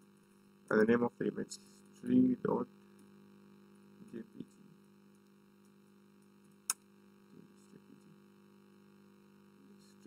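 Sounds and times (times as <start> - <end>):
faint electrical hum: 0.0 - 10.0.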